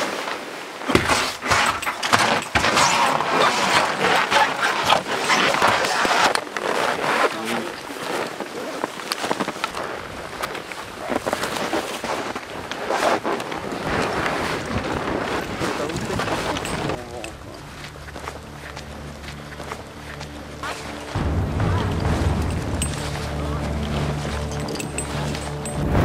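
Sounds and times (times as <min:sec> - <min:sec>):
rustling and crunching: 0:00.0 - 0:26.0.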